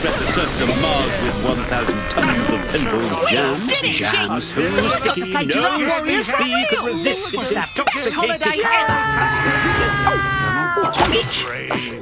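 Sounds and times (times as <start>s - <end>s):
cartoon music and voices: 0.0s - 12.0s.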